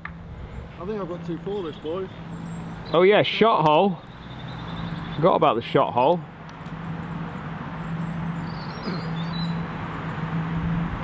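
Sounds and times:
low motor hum: 0:00.0 - 0:03.0, 0:06.2 - 0:11.0
faint outdoor background noise: 0:00.0 - 0:11.0.

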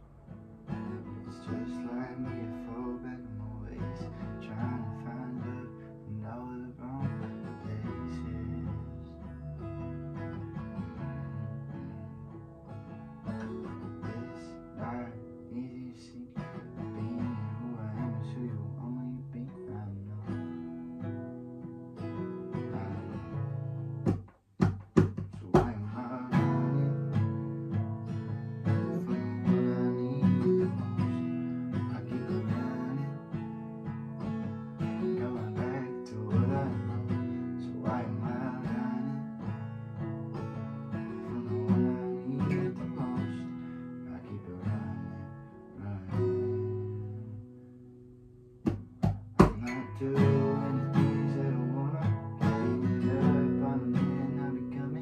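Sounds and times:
acoustic guitar strumming: 0:00.0 - 0:55.0
man singing: 0:00.7 - 0:09.3, 0:11.0 - 0:12.1, 0:13.3 - 0:20.6, 0:22.1 - 0:23.6, 0:25.1 - 0:27.6, 0:28.3 - 0:33.4, 0:34.8 - 0:39.7, 0:40.4 - 0:47.5, 0:49.4 - 0:55.0.

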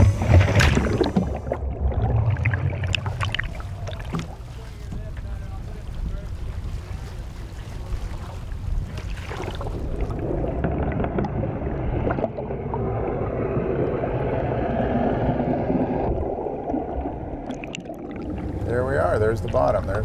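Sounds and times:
boat engine rumble: 0:00.0 - 0:20.0
sea water slapping and rushing: 0:00.0 - 0:20.0
underwater bubbles and rushing: 0:00.0 - 0:20.0.

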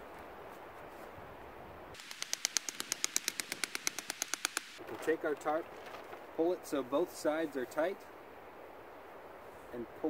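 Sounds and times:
hatchet knocking on wooden stake: 0:02.0 - 0:04.8.

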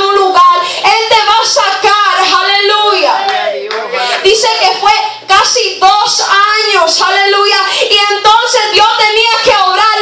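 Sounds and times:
woman speaking into a microphone: 0:00.0 - 0:03.3, 0:04.0 - 0:10.0
hand clapping: 0:03.2 - 0:03.9.

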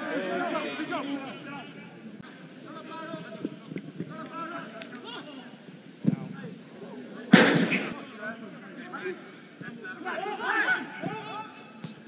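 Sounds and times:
sharp thud: 0:07.3 - 0:08.0
faint shouts from players: 0:07.3 - 0:12.0.

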